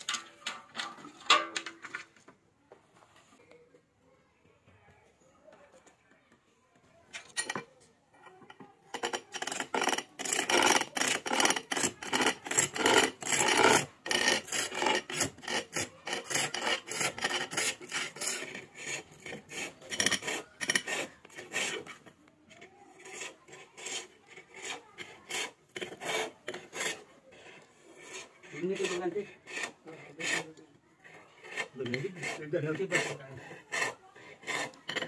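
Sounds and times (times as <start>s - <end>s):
chisel cutting wood on a lathe: 8.5s - 35.0s.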